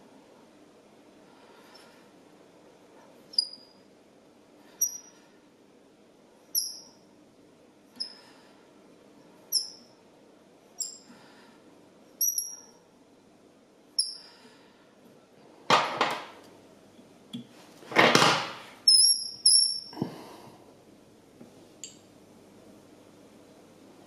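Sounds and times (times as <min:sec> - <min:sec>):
bobbin squeaking: 0:03.3 - 0:03.8, 0:04.8 - 0:05.2, 0:06.5 - 0:07.0, 0:09.5 - 0:09.9, 0:10.8 - 0:11.1, 0:12.2 - 0:12.8, 0:18.9 - 0:20.0.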